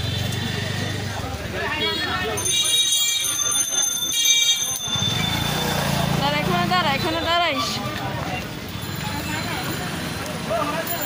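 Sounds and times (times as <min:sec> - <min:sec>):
high steady ringing tone: 0:02.4 - 0:05.9.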